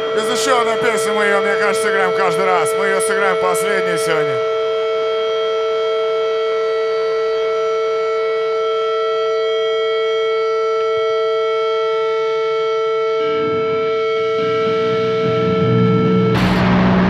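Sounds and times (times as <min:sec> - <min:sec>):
steady electric drone: 0:13.2 - 0:17.0.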